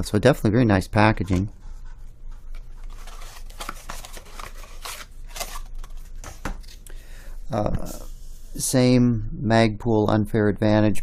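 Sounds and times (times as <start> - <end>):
plastic packaging rustling: 2.5 - 6.9.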